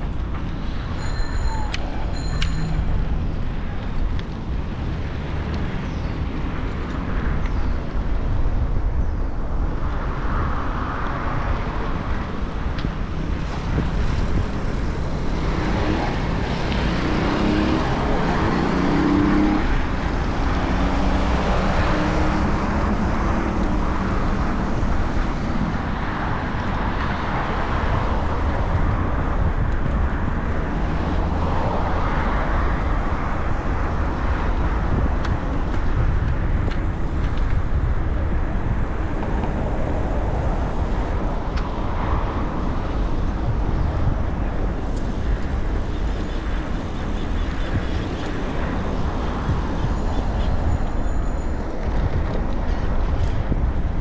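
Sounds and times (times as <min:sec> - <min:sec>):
passing cars: 0:00.0 - 0:54.0
vehicle engine hum: 0:00.0 - 0:54.0
wind on microphone: 0:00.0 - 0:54.0.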